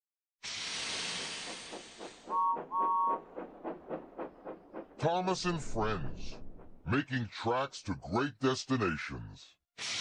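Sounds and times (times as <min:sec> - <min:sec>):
steam hissing: 0:00.4 - 0:02.5
steam locomotive chuffing: 0:00.4 - 0:07.0
two-note train whistle toots: 0:02.3 - 0:03.2.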